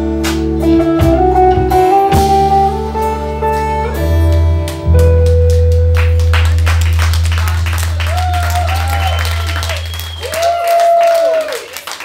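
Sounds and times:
audience clapping and cheering: 4.7s - 12.0s.

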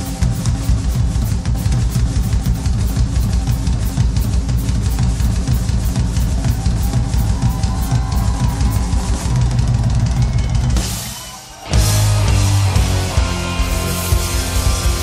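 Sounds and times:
heavy bass: 0.0s - 11.1s, 11.7s - 15.0s
driving drum beat: 0.0s - 15.0s
rock band playing: 0.0s - 15.0s.

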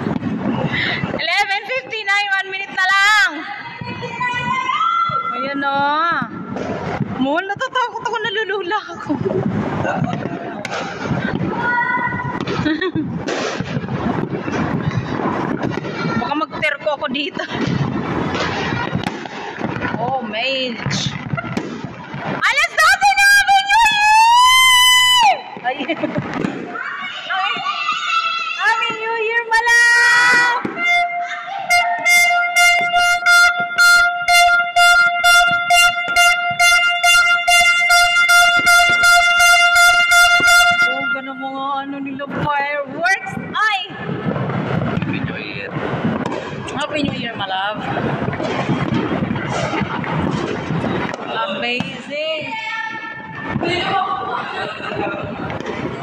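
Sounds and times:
fireworks crackling and banging: 0.0s - 56.0s
people's voices: 0.0s - 56.0s
horn sounding steady note: 30.7s - 41.7s.

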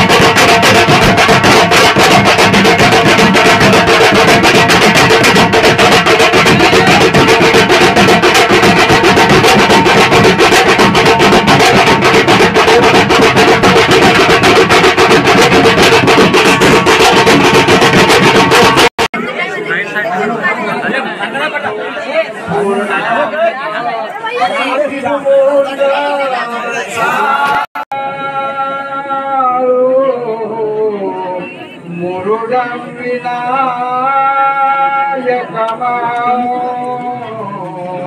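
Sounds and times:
loud music with fast drumming: 0.0s - 19.1s
crowd chatter: 0.0s - 38.0s
man singing or chanting: 24.6s - 38.0s.

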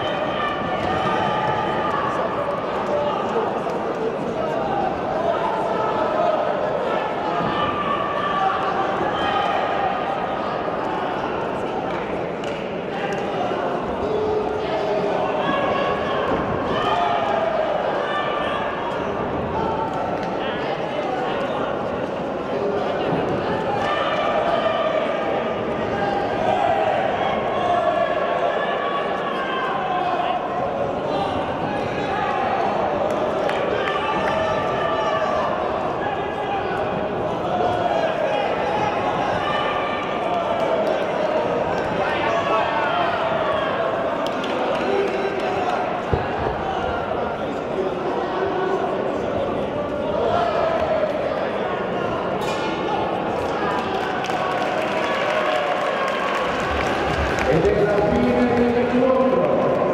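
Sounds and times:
crowd shouting: 0.0s - 3.7s, 4.4s - 11.7s.

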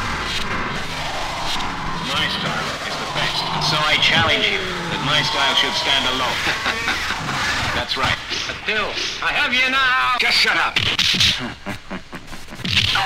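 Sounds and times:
swooping pitch glides: 0.1s - 8.3s
voice-like sample: 0.7s - 8.2s.

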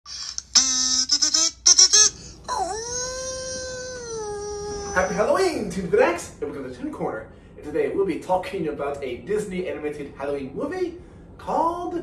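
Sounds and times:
voice sounding wordlessly: 2.5s - 5.7s.

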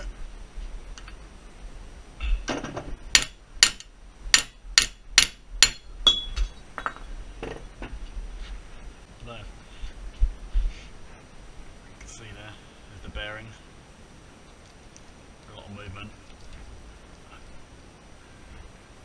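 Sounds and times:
hammer striking metal: 3.1s - 7.0s.

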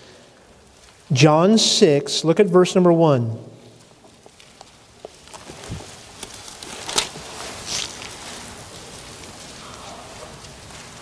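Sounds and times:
book pages rustling: 3.8s - 11.0s.

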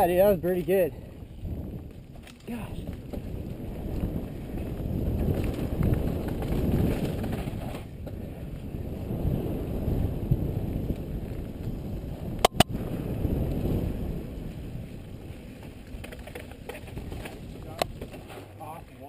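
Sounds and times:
bike rattling: 0.0s - 19.0s
wind on microphone: 0.0s - 19.0s
tyres rumbling on dirt: 1.5s - 19.0s
sharp clicks: 12.4s - 12.7s.

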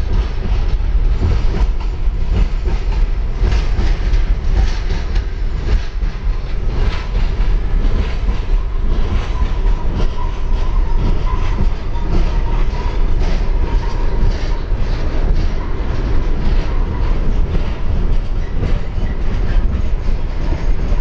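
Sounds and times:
train wheels rumbling and clacking: 0.0s - 21.0s.

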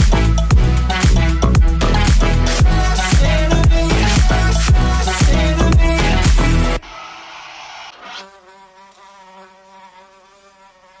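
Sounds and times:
fly buzzing: 0.0s - 11.0s.

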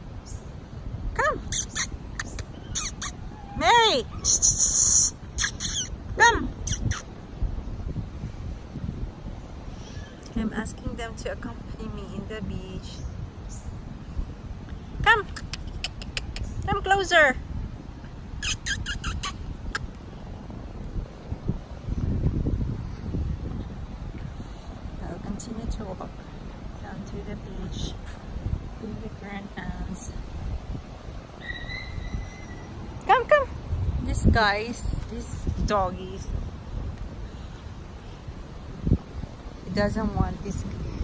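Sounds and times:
woman calling: 1.1s - 7.1s, 15.0s - 17.4s, 31.4s - 36.3s
squeaky chirps: 1.4s - 3.5s, 4.1s - 6.0s, 6.6s - 7.1s, 18.4s - 19.8s, 31.4s - 32.8s.

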